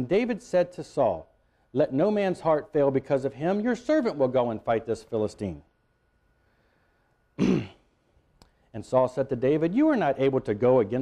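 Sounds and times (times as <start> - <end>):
man clearing his throat: 7.4 - 7.9.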